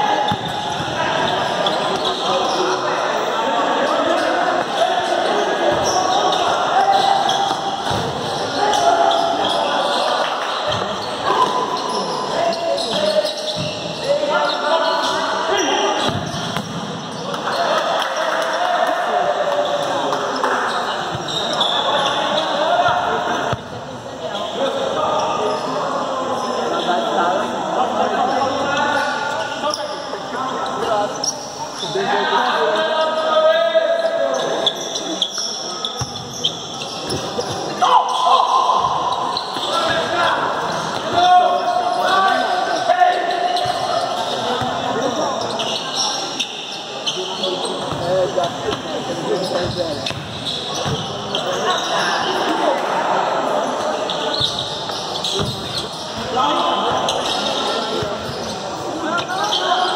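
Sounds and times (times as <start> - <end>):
players shouting: 0.0 - 23.5, 37.6 - 46.1
ball kicked and bouncing on court: 7.4 - 8.2, 16.0 - 16.9, 49.6 - 51.1, 55.4 - 55.8.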